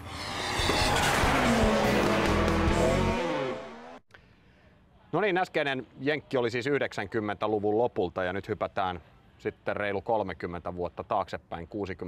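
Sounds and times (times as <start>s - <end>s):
car sound effects: 0.0s - 4.0s.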